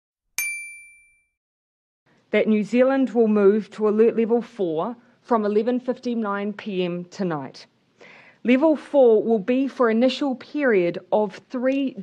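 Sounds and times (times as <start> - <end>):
bell-like ding: 0.4 - 1.4.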